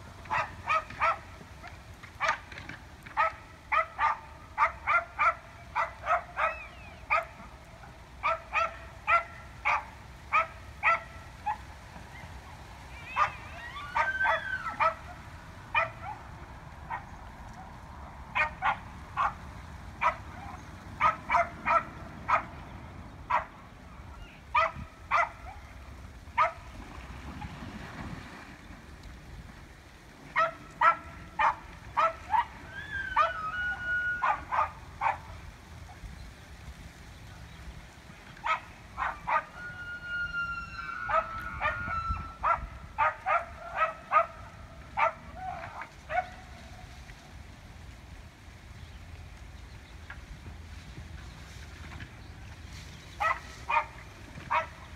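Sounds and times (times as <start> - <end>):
elk clacks and yips: 0.2 - 7.4
elk high whistling calls: 39.4 - 42.5.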